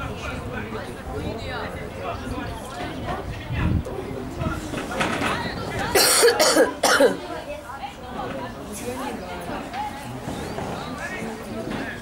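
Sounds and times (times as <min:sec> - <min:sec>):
voices: 0:00.0 - 0:12.0
person coughing: 0:06.0 - 0:07.2.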